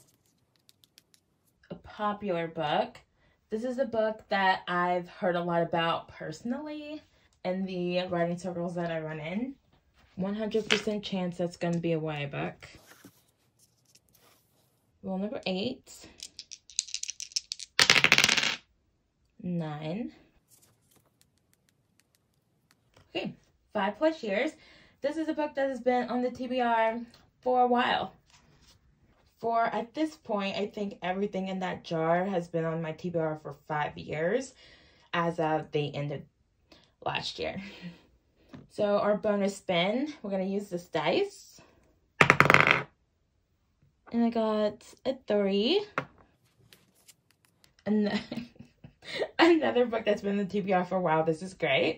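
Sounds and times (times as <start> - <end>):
dice rattling when shaken: 0.1 - 1.2, 16.1 - 18.6, 42.2 - 42.8
dice clattering on board: 16.2 - 18.6, 42.2 - 42.9
die clattering on a table: 42.2 - 42.9.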